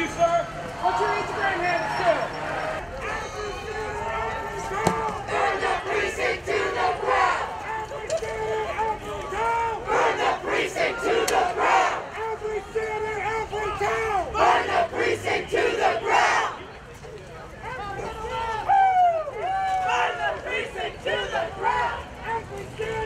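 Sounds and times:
crowd chanting slogans: 0.7s - 3.2s, 4.0s - 16.7s, 19.8s - 23.0s.

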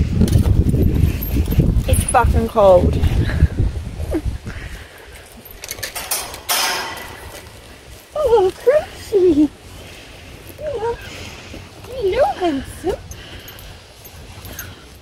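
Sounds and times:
rustling noise: 0.0s - 15.0s.

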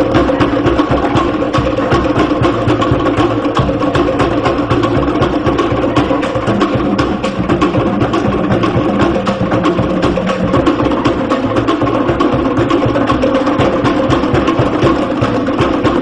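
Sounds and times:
skin drums beating fast rhythm: 0.0s - 16.0s
wooden slit drums beating: 0.0s - 16.0s.

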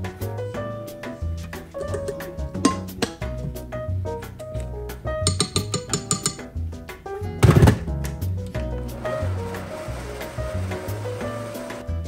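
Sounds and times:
background music with bass line: 0.0s - 12.0s
blender running: 8.9s - 11.8s.

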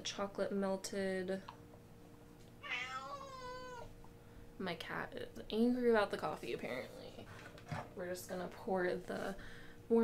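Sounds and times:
cat meowing: 2.6s - 3.9s.

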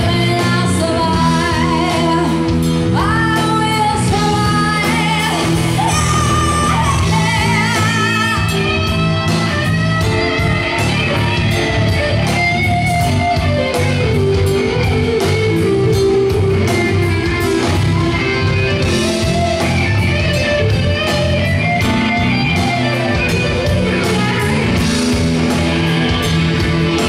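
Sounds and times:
electric guitar lead: 0.0s - 27.0s
live band playing instrumental: 0.0s - 27.0s.

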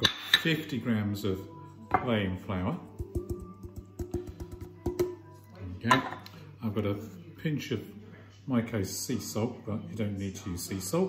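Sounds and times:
background music: 0.0s - 11.0s
glass bowl tapping glass jug: 2.9s - 5.2s, 5.9s - 6.4s.

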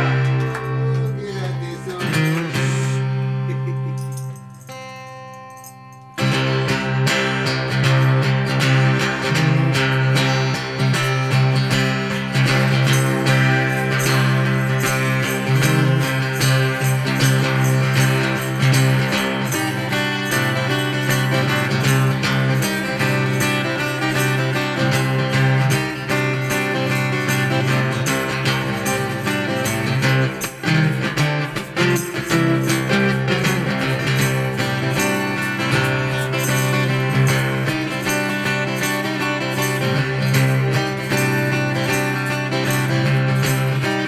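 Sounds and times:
slide acoustic guitar fingerstyle: 0.0s - 44.0s.

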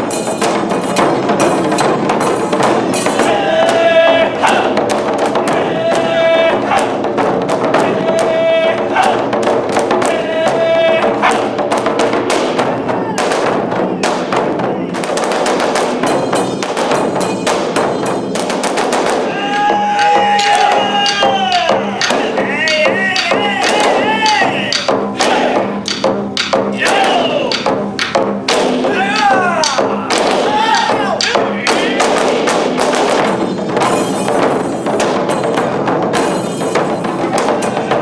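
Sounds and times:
taiko drums: 0.0s - 38.0s.

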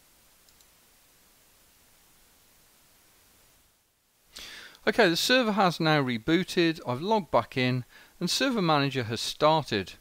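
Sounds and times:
faint steady hiss: 0.0s - 10.0s
computer mouse clicks: 0.4s - 0.7s.

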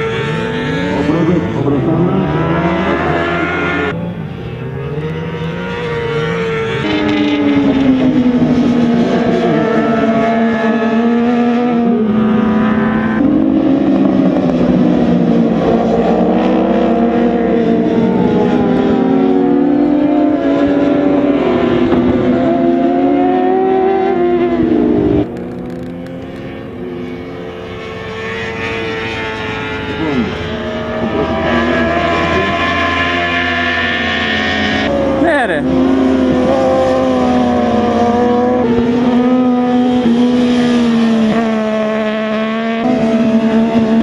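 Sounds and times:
racing motorcycles at high revs: 0.0s - 44.0s.

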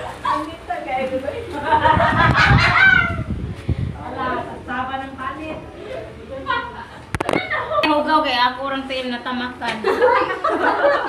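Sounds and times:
phone handling noise: 7.1s - 7.5s.

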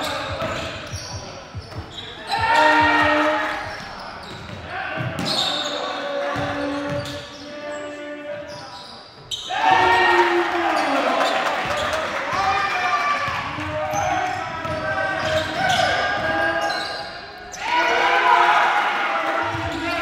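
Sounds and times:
players shouting: 2.2s - 4.0s, 9.4s - 20.0s.

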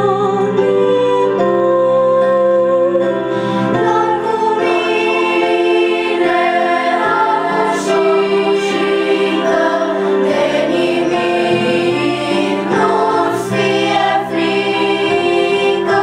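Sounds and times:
children's choir singing: 3.8s - 16.0s.

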